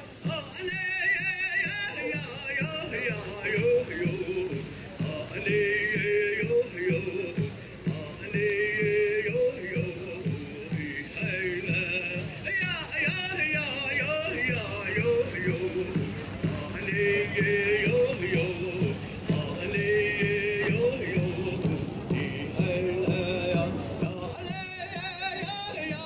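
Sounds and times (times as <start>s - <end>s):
big drum beating: 9.8s - 25.6s.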